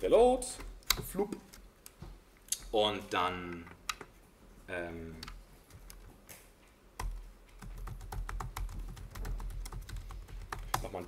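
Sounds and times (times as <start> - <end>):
computer keyboard typing: 7.0 - 11.0.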